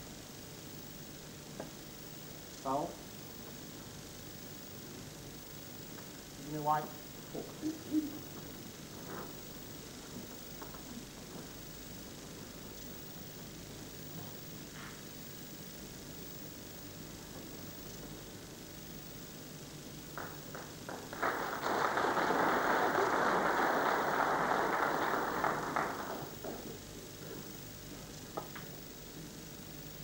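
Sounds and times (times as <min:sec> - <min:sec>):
audience applauding: 0:20.2 - 0:26.8.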